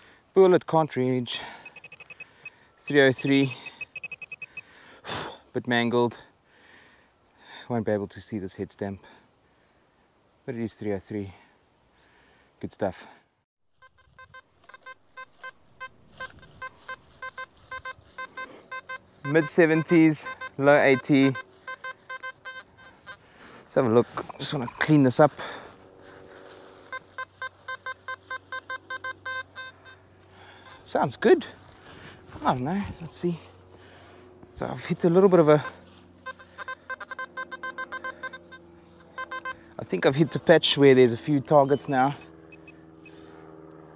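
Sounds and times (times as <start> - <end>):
metal detector beeps: 1.6 - 4.7, 13.8 - 23.2, 26.9 - 30.9, 35.5 - 40.8, 41.4 - 43.2.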